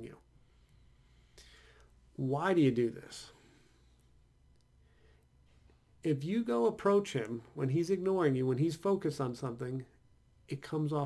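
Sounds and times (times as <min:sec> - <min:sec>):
faint breath in: 0:00.3 - 0:02.0, 0:03.3 - 0:04.1, 0:04.8 - 0:05.7.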